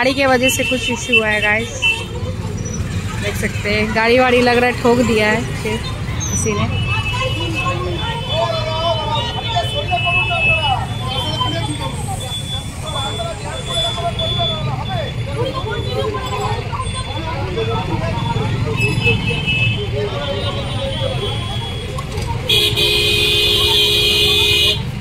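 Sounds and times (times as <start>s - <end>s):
people arguing: 0.0s - 24.9s.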